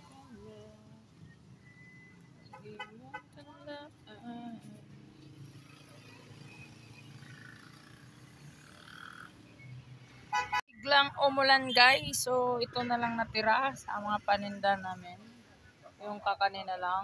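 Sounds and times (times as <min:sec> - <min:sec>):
low outdoor ambience: 0:00.0 - 0:17.0.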